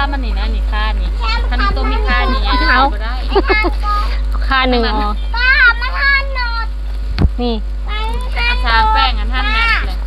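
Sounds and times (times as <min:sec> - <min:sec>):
women talking: 0:00.0 - 0:05.3, 0:07.3 - 0:07.7, 0:08.4 - 0:10.0
low hum: 0:00.0 - 0:10.0.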